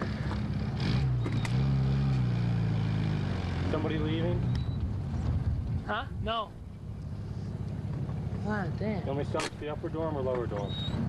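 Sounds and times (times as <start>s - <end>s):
vehicle engine low hum: 0.0s - 11.0s.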